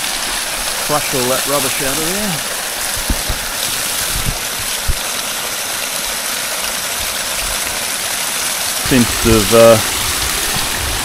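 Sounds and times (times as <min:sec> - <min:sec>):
water gushing from pipe: 0:00.0 - 0:11.0
soft low thumps: 0:02.8 - 0:05.1.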